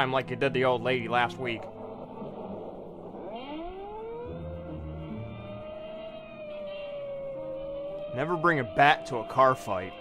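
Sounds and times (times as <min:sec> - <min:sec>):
siren wailing: 0:00.0 - 0:10.0.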